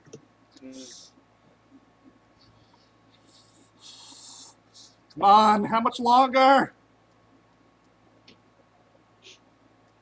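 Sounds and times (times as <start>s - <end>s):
faint hum: 0.0s - 10.0s
soft hissing rustles: 2.4s - 5.1s.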